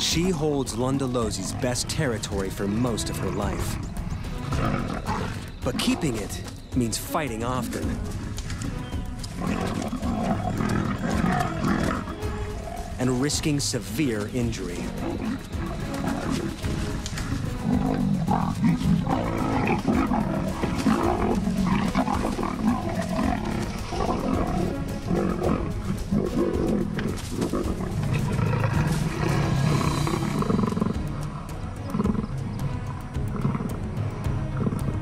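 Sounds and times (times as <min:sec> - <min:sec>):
leopards snarling and growling: 0:00.0 - 0:13.3, 0:14.0 - 0:35.0
background music: 0:00.0 - 0:35.0.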